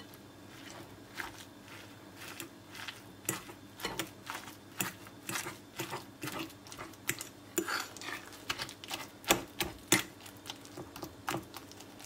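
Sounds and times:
fork mashing eggplant: 0:00.0 - 0:12.0.

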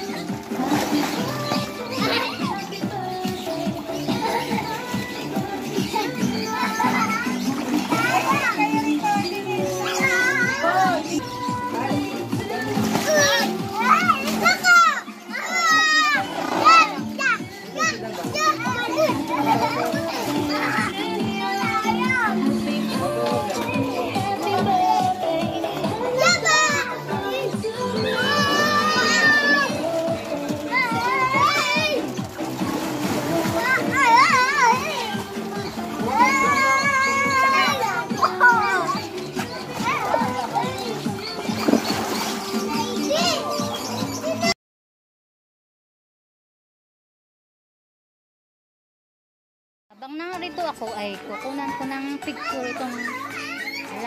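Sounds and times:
background music: 0:00.0 - 0:44.6, 0:49.9 - 0:54.0
children shouting: 0:00.0 - 0:44.6, 0:52.3 - 0:54.0.

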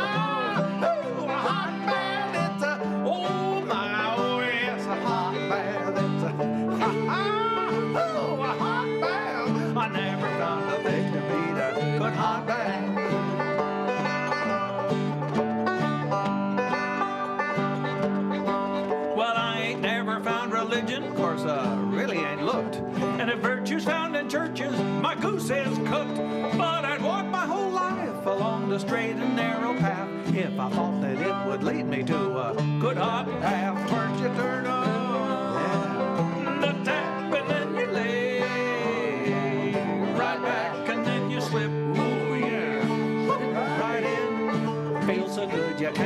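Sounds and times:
banjo: 0:00.0 - 0:46.0
fiddle melody: 0:00.0 - 0:46.0
strummed strings: 0:00.0 - 0:46.0.

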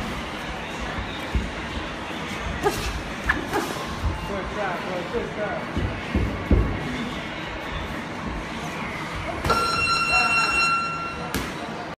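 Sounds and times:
electronic buzzer tone: 0:09.5 - 0:11.3.

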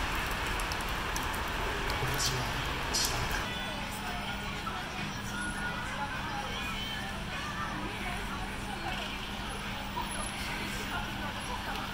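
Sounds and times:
faint voices of passers-by: 0:01.4 - 0:11.9.

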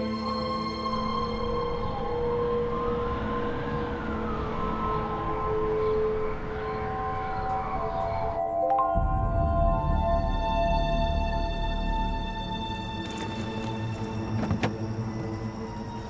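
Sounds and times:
soundtrack music with held tones: 0:00.0 - 0:16.0
siren wailing: 0:01.8 - 0:08.6.

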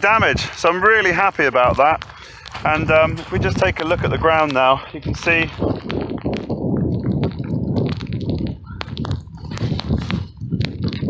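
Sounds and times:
footsteps through wet grass: 0:00.0 - 0:11.0
wind rumble: 0:00.0 - 0:11.0.

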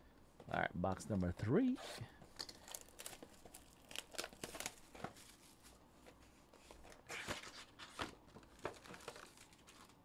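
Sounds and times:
plastic shrink wrap crinkling: 0:02.4 - 0:05.8, 0:08.0 - 0:10.0.

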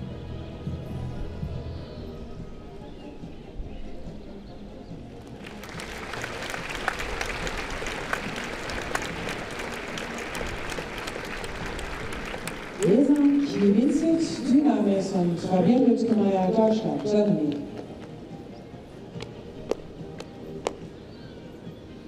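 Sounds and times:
audience applauding: 0:05.3 - 0:14.3.

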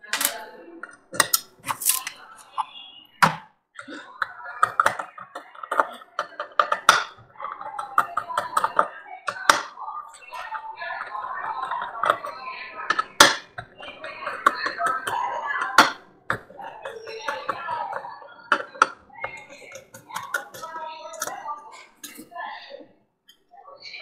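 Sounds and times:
indistinct background voices: 0:00.0 - 0:24.0.

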